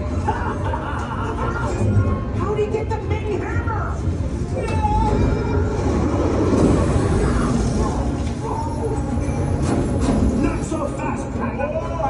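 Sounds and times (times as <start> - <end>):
loud rumbling sound effects: 5.0 - 8.3.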